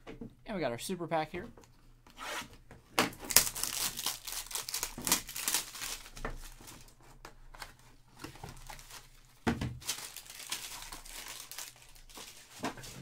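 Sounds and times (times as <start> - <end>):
plastic wrapping crinkling: 3.2 - 7.0, 8.1 - 13.0.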